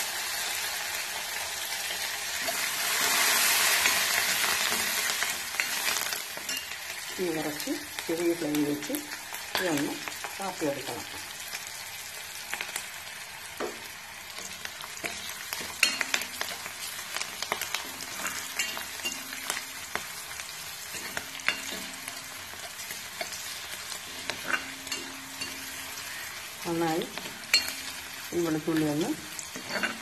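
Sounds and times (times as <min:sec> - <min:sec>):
food sizzling in hot oil: 0:00.0 - 0:30.0.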